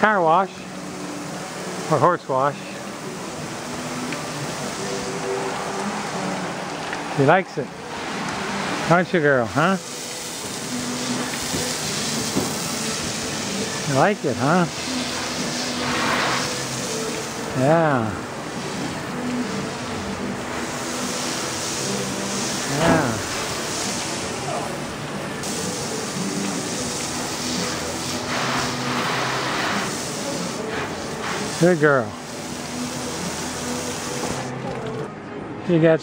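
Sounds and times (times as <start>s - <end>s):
hose nozzle spraying water: 1.2s - 35.0s.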